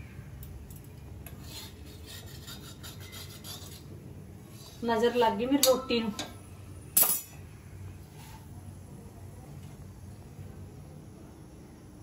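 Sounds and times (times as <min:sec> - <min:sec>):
metal spatula scraping iron griddle: 0:01.4 - 0:03.9.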